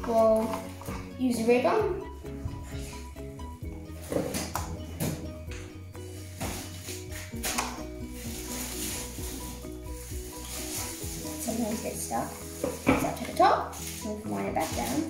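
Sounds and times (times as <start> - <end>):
background music with bass: 0.0 - 15.0.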